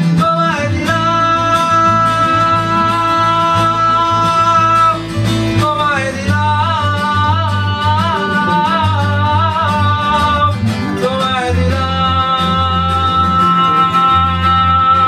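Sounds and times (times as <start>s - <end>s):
acoustic guitars strumming: 0.0s - 15.0s
electric bass guitar: 0.0s - 15.0s
man singing: 0.0s - 15.0s.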